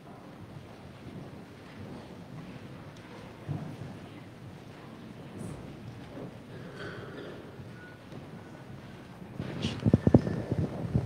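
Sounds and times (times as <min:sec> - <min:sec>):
people shifting and moving about: 0:00.0 - 0:11.0.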